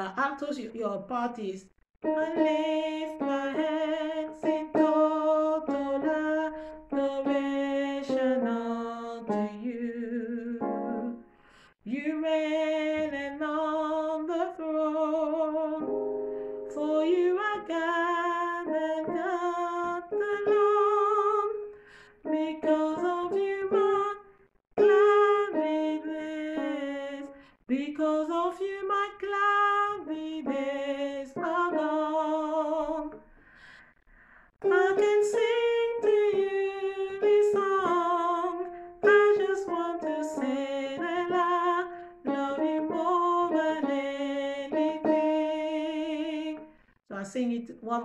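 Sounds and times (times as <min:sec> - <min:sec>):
woman singing gospel song: 0:01.4 - 0:11.2, 0:11.8 - 0:15.8, 0:16.7 - 0:21.6, 0:22.3 - 0:24.2, 0:24.8 - 0:33.2, 0:34.6 - 0:48.0.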